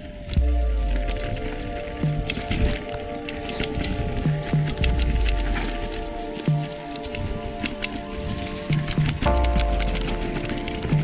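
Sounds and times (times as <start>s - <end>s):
background music with held chords: 0.0s - 11.0s.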